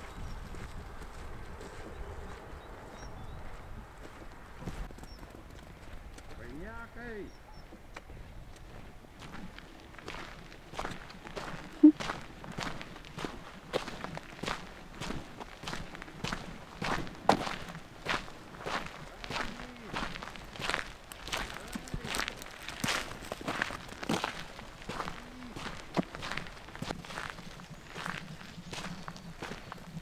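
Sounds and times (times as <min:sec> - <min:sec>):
footsteps on dirt track: 0:00.0 - 0:30.0.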